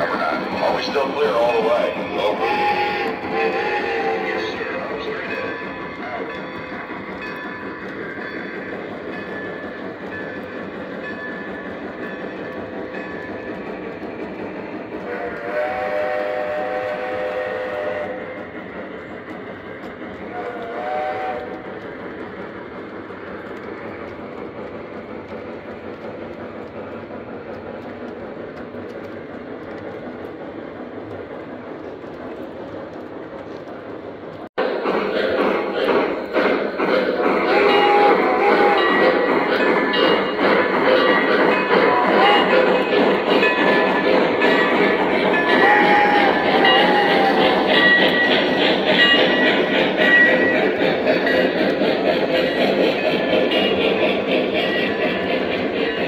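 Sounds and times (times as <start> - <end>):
train whistle blasts: 2.3 - 4.3, 15.0 - 18.2, 20.3 - 21.6, 37.4 - 39.2, 41.6 - 42.7, 45.4 - 47.6.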